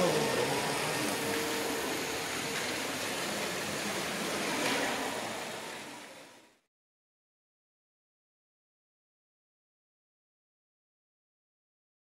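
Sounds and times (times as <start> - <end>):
cave ambience rushing hiss: 0.0 - 6.7.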